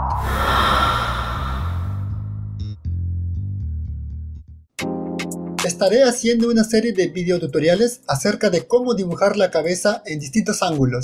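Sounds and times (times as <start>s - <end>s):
hissing whoosh: 0.0s - 2.2s
background music with bass: 1.8s - 11.0s.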